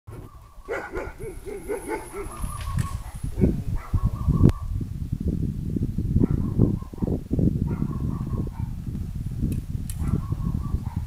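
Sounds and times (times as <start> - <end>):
animal calling: 0.1 - 4.6.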